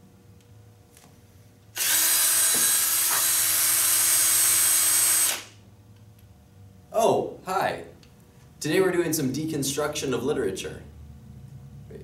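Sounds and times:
cordless power saw running: 1.8 - 5.5.

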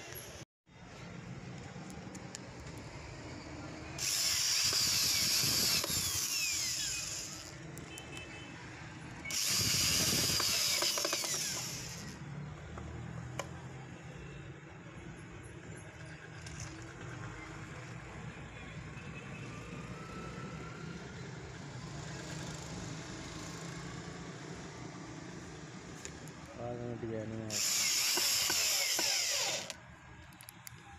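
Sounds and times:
cordless drill driving screws: 4.0 - 7.6, 9.3 - 12.2, 27.5 - 29.8.

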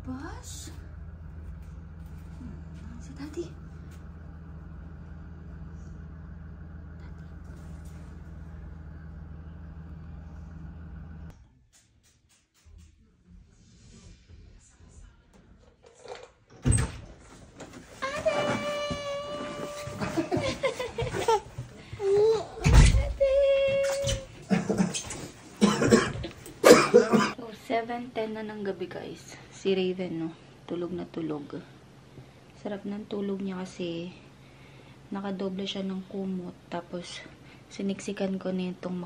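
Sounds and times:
woman talking: 0.0 - 0.9, 2.4 - 3.7, 18.0 - 20.5, 22.3 - 24.3, 27.3 - 31.8, 32.6 - 34.2, 35.1 - 39.0
muffled large vehicle engine: 0.0 - 11.3.

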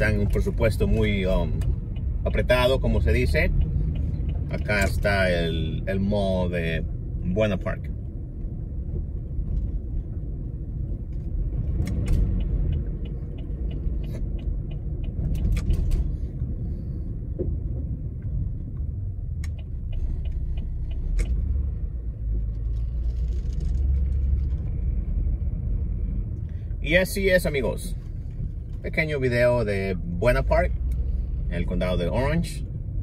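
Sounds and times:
car engine and tyres rumbling: 0.0 - 33.0
light ticks: 0.3 - 5.6, 11.1 - 15.7, 18.2 - 21.6.

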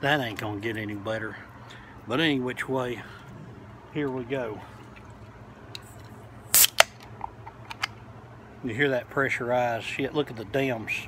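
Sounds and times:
can pressure burst: 6.5 - 7.0.

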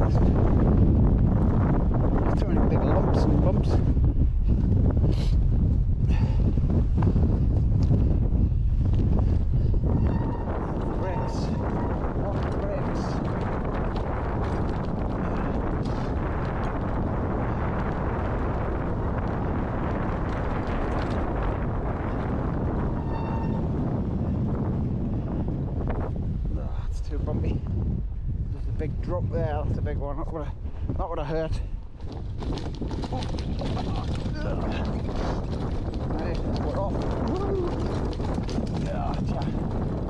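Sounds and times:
wind buffeting microphone: 0.0 - 40.0
mountain bike knocks and rattles: 32.0 - 40.0.

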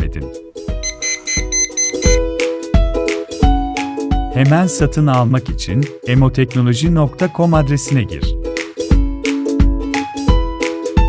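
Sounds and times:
background music with beat: 0.5 - 7.3, 8.3 - 11.0
rapid high beeps: 0.8 - 2.2.

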